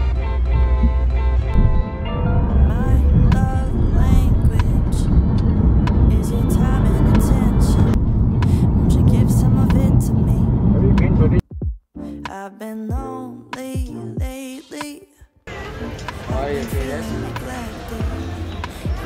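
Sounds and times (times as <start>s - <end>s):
music: 0.0s - 10.3s, 11.0s - 19.0s
car cabin road rumble: 0.6s - 11.4s
voice: 2.7s - 5.1s, 6.1s - 11.4s, 16.1s - 19.0s.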